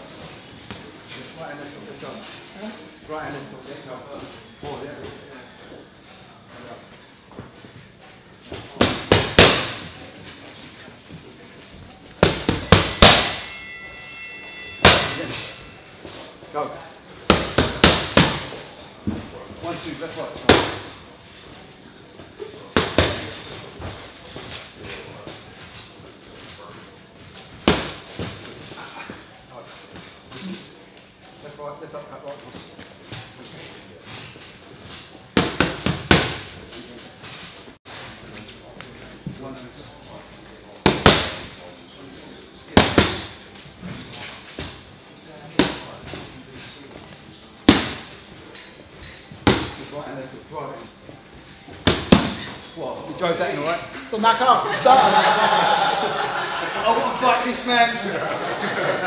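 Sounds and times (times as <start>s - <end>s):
punches smacking on pads: 8.8s - 9.8s, 17.3s - 18.5s, 35.4s - 36.5s, 40.8s - 41.5s, 42.7s - 43.4s, 51.8s - 52.5s.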